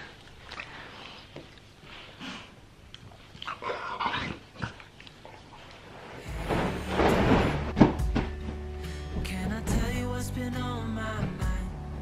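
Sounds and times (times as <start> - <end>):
dog throaty noises: 0.0 - 6.2
rustling: 5.5 - 8.6
background music: 6.2 - 12.0.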